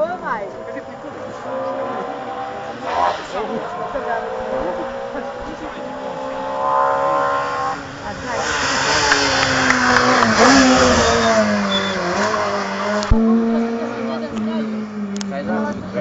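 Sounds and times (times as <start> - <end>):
race car passing at high revs: 0.0 - 16.0.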